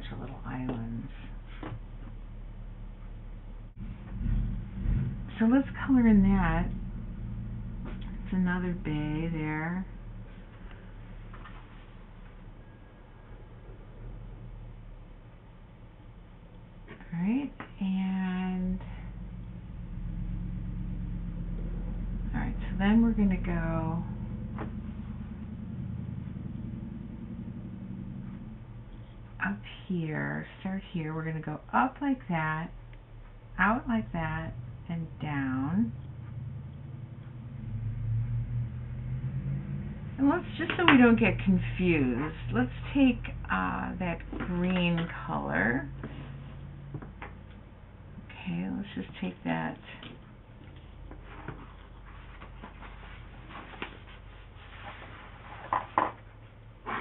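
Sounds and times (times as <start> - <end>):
low rumble: 0.0 - 57.0.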